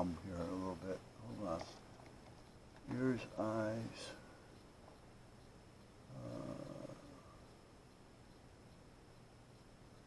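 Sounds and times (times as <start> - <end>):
man humming low: 6.1 - 7.3.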